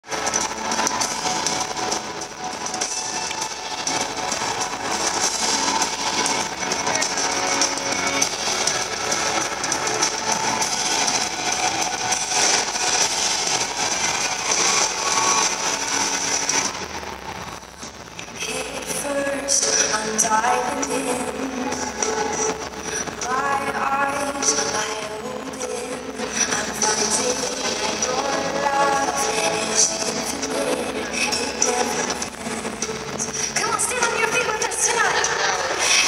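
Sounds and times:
live band music in arena: 0:00.0 - 0:36.0.

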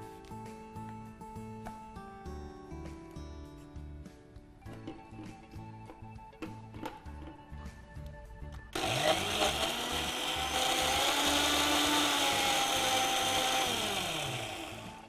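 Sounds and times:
electric mixer grinder running: 0:08.8 - 0:15.0.

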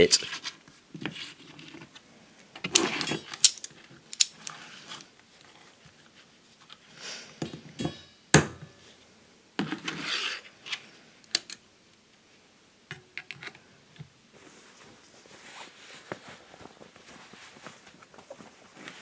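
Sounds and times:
metal tools clicking and clinking: 0:02.7 - 0:05.1, 0:07.4 - 0:08.1.

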